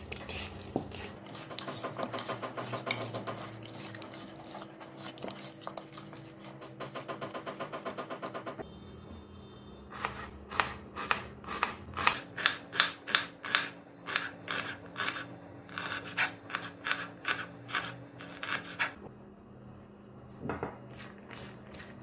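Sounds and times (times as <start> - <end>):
knife slicing onion on board: 0.0 - 8.6, 9.9 - 19.0.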